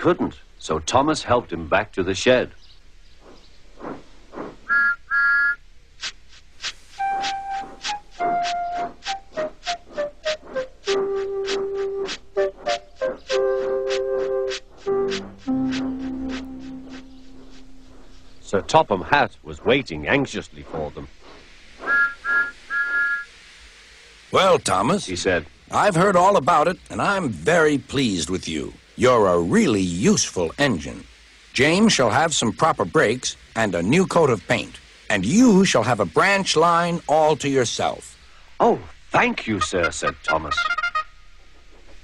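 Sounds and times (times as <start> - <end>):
steam whistle toots: 4.7 - 5.6, 6.9 - 17.3, 21.8 - 23.3
music with chuffing beat: 7.0 - 18.0.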